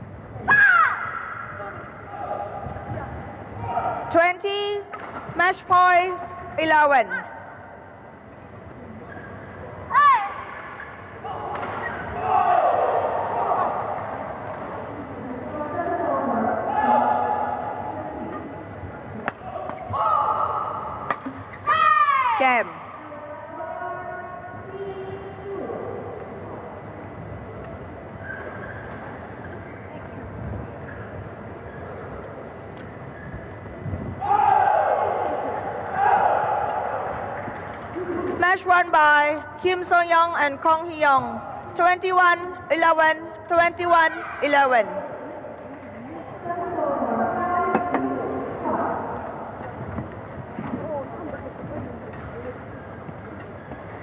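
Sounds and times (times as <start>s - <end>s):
players shouting: 9.9s - 14.3s, 19.4s - 21.0s, 34.2s - 37.4s
announcer speaking: 38.4s - 45.0s.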